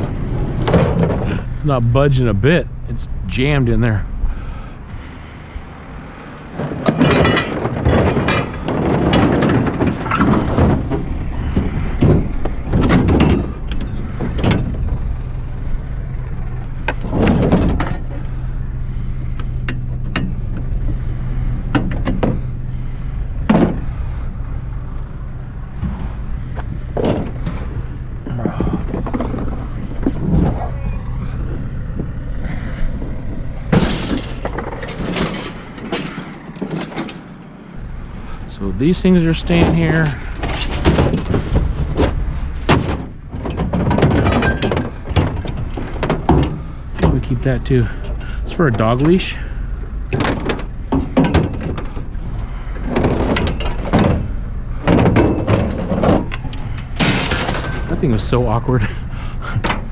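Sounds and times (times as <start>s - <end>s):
steady low hum: 0.0s - 59.9s
refrigerator knocking and scraping: 26.9s - 31.4s, 39.5s - 47.5s, 52.8s - 58.4s.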